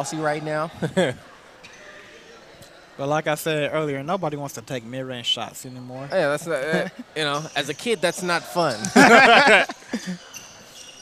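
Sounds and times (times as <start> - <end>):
murmur of a gym hall: 0.0 - 11.0.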